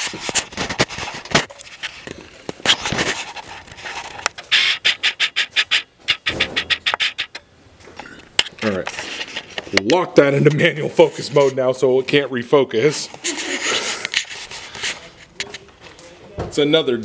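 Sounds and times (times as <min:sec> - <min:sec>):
fabric rubbing against microphone: 0:00.0 - 0:07.3, 0:08.6 - 0:09.8, 0:12.9 - 0:15.7.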